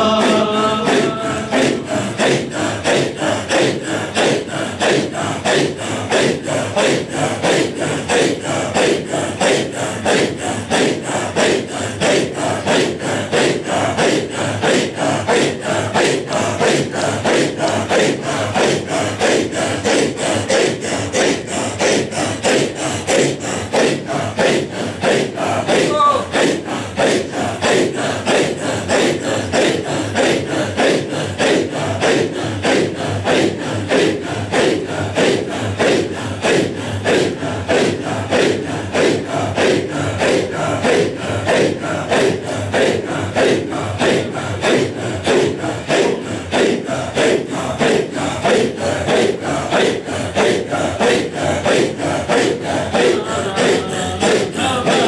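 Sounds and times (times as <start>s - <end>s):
men chanting in rhythm: 0.0s - 55.0s.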